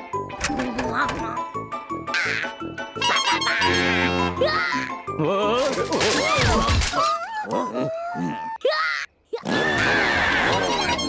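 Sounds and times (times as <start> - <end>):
cartoon characters moaning and groaning: 2.0 - 2.7, 3.5 - 11.0.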